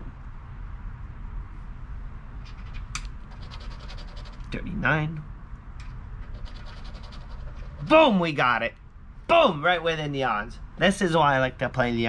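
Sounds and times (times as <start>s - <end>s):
low background rumble: 0.0s - 12.0s
coin scratching lottery ticket: 2.5s - 4.6s, 6.2s - 8.0s.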